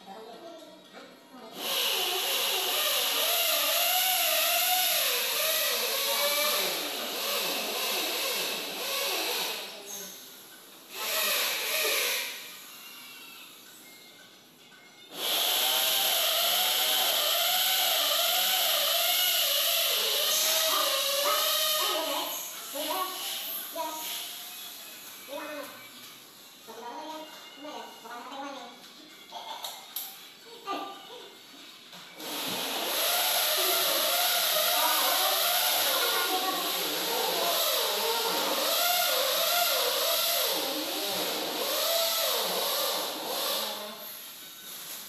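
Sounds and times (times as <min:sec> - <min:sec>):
electric drill running: 0:01.6 - 0:10.0, 0:10.9 - 0:13.6, 0:15.1 - 0:24.9, 0:32.2 - 0:44.4.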